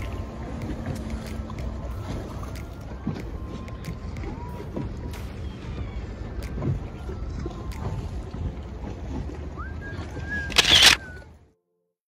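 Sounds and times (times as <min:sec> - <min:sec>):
choppy water: 0:00.0 - 0:11.6.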